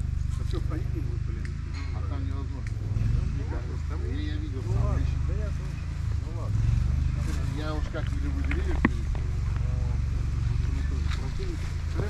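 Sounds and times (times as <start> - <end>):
people talking indistinctly: 0.0 - 12.0
steady low rumble: 0.0 - 12.0.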